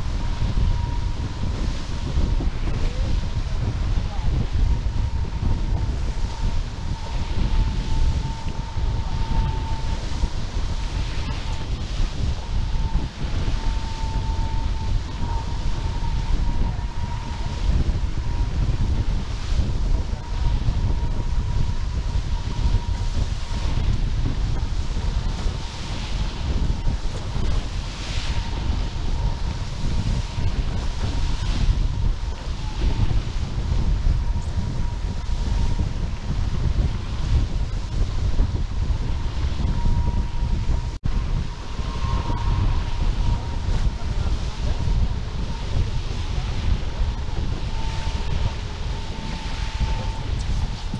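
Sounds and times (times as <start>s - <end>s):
high steady hum: 0.0s - 50.9s
wind buffeting microphone: 0.0s - 50.9s.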